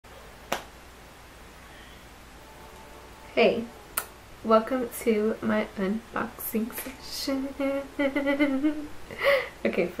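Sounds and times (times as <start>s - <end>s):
sharp hand clap: 0.5s - 0.7s.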